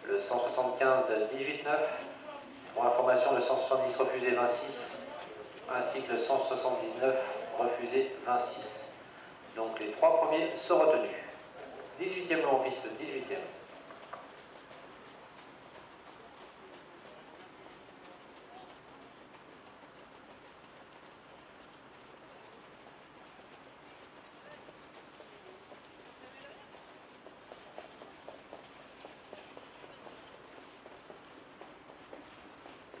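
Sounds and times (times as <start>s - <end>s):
distant voices: 0.0s - 33.0s
faint hoofbeats: 0.0s - 33.0s.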